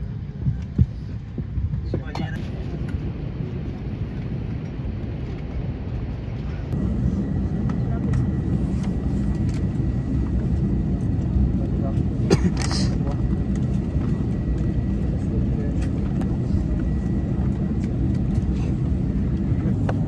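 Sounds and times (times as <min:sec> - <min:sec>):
airplane cabin low rumble: 0:00.0 - 0:20.0.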